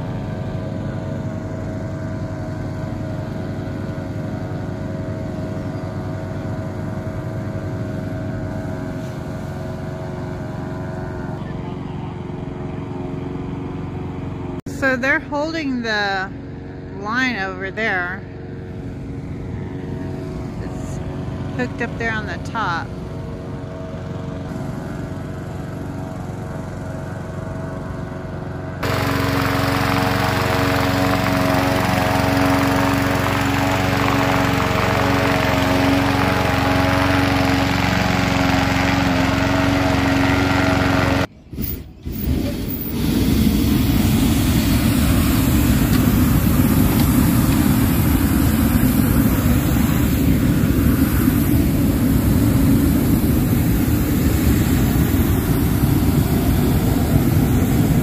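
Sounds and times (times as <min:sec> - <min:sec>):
inflator fan blowing air: 0:00.0 - 0:58.0.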